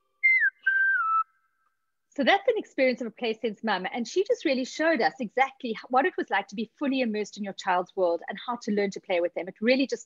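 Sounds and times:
falling whistle-like tones: 0.0 - 1.6.

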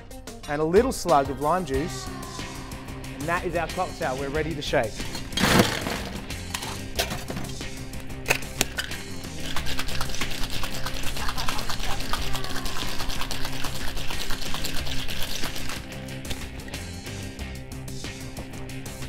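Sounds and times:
background music: 0.0 - 19.0
ice rattling in cocktail shaker: 5.0 - 7.5, 8.3 - 16.6.

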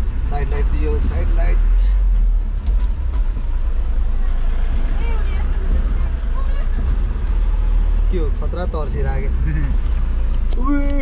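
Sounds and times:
vehicle rumble with road noise: 0.0 - 11.0.

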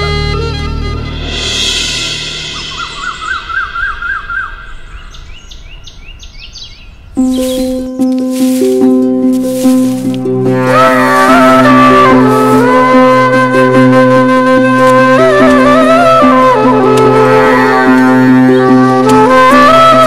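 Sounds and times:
sad string music: 0.0 - 3.9, 7.0 - 20.0
background music with drones and percussion: 0.0 - 4.9, 10.1 - 20.0
birds chirping: 2.4 - 8.9.

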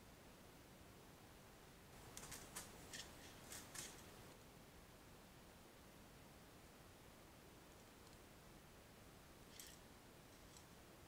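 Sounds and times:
mouse claws scratching metal: 2.1 - 4.2, 9.5 - 10.7.

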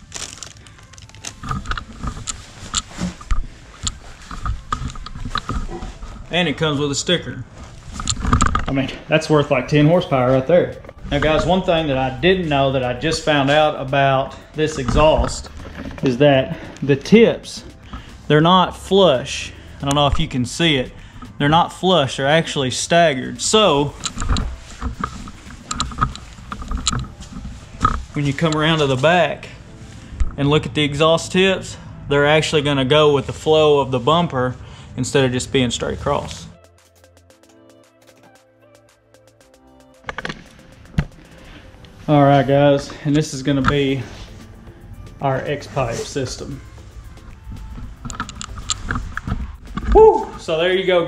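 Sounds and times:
footsteps on concrete floor: 2.4 - 6.4
short rising shout: 49.9 - 50.5.

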